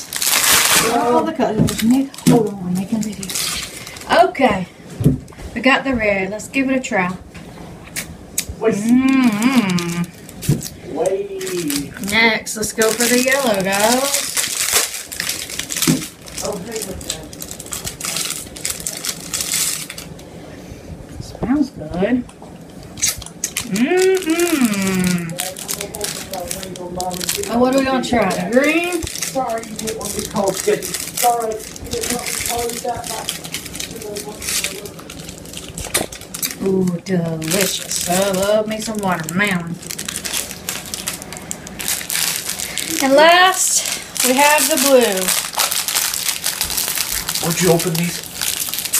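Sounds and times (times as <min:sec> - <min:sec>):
plastic wrapper crinkling: 0:00.0 - 0:04.4, 0:08.8 - 0:20.3, 0:23.0 - 0:48.9.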